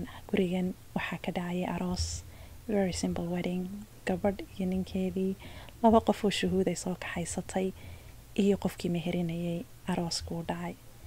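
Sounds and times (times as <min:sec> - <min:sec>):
woman talking: 0:00.0 - 0:07.8, 0:08.4 - 0:10.8.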